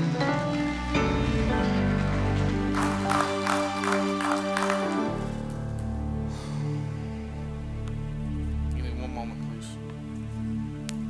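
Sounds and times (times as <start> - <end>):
keyboard playing soft chords: 0.0 - 10.8
congregation applauding and cheering: 2.5 - 5.9.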